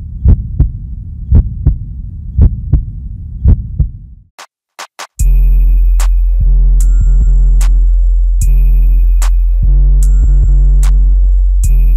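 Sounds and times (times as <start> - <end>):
heartbeat thumps: 0.2 - 4.2
low hum: 5.2 - 11.9.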